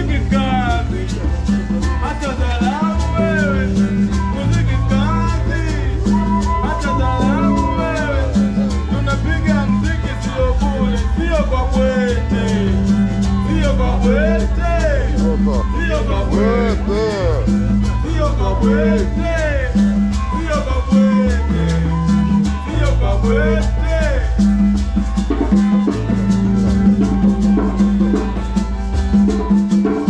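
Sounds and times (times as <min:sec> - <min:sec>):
latin band music: 0:00.0 - 0:30.0
shaker pulse: 0:00.0 - 0:30.0.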